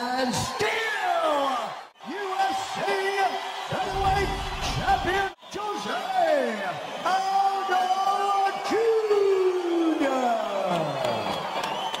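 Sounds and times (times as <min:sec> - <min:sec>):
crowd noise: 0:03.4 - 0:07.0.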